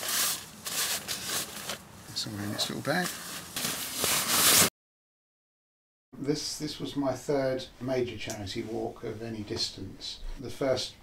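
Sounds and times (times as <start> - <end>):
fabric sack rustling: 0.0 - 4.7.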